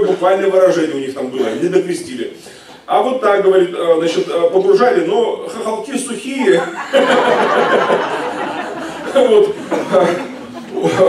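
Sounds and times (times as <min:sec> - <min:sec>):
man chuckling into microphone: 0:06.4 - 0:11.0.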